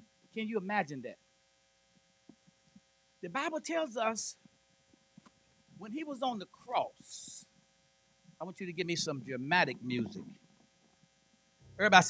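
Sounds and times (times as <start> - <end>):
electrical mains hum: 0.0 - 12.0
man speaking: 0.4 - 1.2, 3.2 - 4.3, 5.8 - 7.4, 8.4 - 10.3, 11.8 - 12.0.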